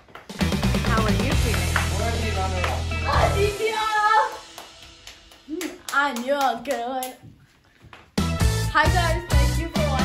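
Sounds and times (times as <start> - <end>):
hand claps: 0.0 - 0.6, 1.4 - 2.9, 4.4 - 8.3.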